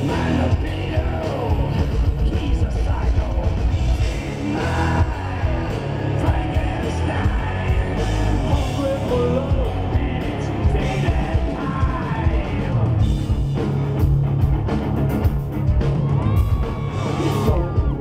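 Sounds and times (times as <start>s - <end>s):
man singing and shouting: 0.0s - 13.3s, 16.7s - 18.0s
live rock band playing: 0.0s - 18.0s.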